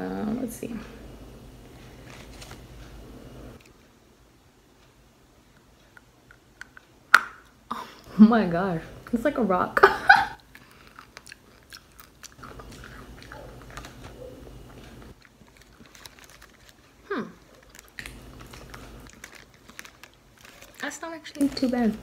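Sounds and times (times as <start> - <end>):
person chewing clay: 10.4 - 21.8.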